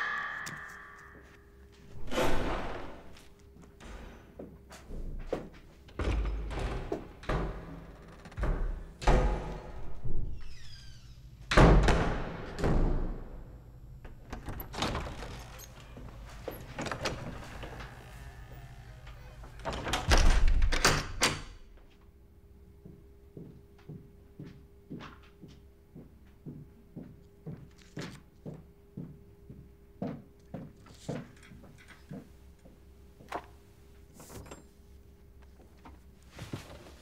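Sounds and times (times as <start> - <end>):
short high door squeak: 10.3 - 11.3.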